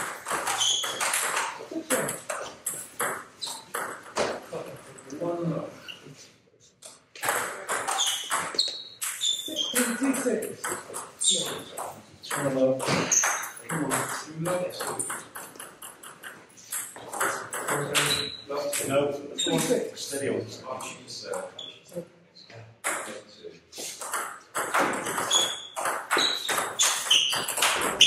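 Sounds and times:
people talking: 1.6s - 2.2s, 9.5s - 15.2s, 17.0s - 23.6s.

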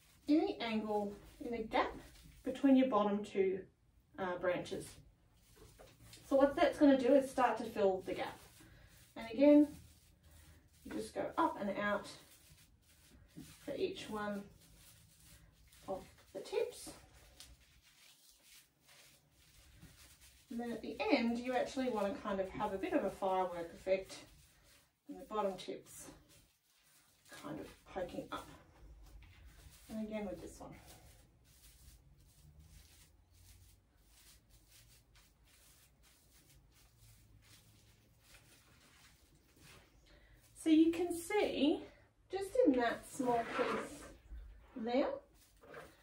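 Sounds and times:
artificial tree branches rustling: 0.0s - 2.7s, 4.6s - 41.6s, 42.4s - 46.0s.

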